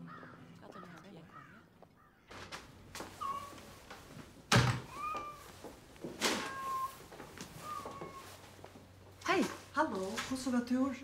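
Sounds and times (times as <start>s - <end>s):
front door shutting: 2.3s - 6.9s
cat mewing: 3.1s - 3.6s, 4.8s - 5.5s, 6.2s - 8.4s.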